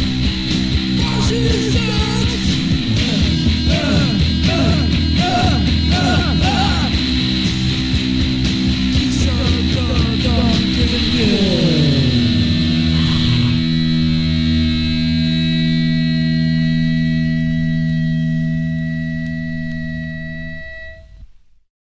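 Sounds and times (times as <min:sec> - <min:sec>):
punk rock band: 0:00.0 - 0:18.1
guitar and bass chord ringing: 0:00.0 - 0:21.3
downward pitch slide: 0:10.6 - 0:21.2.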